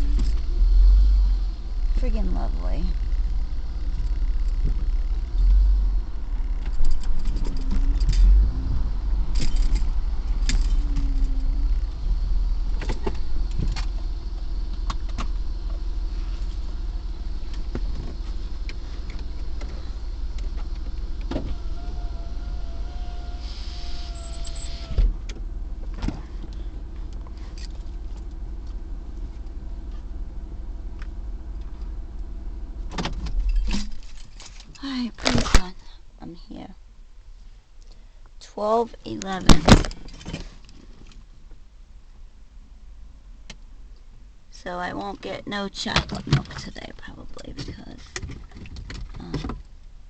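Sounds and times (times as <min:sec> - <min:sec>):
thin steady whine: 0:00.0 - 0:25.9
engine and road rumble: 0:00.0 - 0:50.0.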